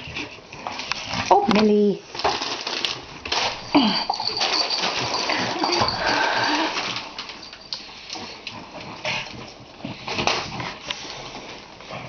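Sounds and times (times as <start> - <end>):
puppies whining and squealing: 4.1 - 6.9.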